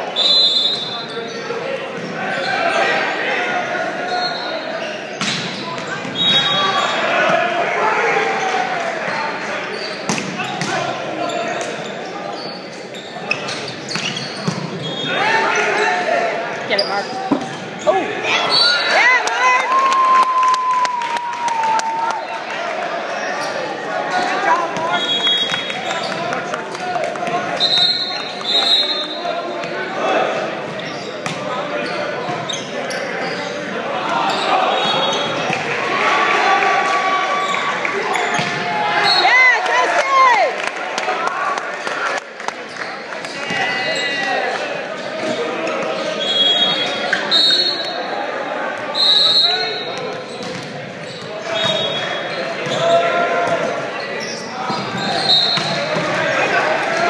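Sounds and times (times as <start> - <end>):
echoing chatter and calls: 0.0 - 57.0
sneakers squeaking on hardwood: 9.7 - 15.2, 16.7 - 18.8, 30.7 - 35.6, 49.5 - 56.1.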